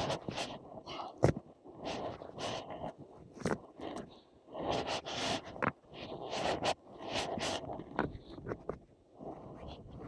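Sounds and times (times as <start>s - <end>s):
clothing rubbing on microphone: 0.0s - 10.0s.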